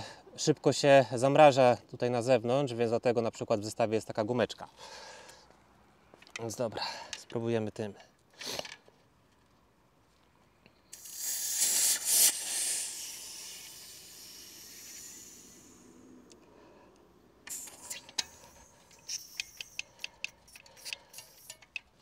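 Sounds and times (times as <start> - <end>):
gas cartridge hissing: 10.9 - 16.4, 17.4 - 22.0
small clicks and knocks: 17.4 - 22.0.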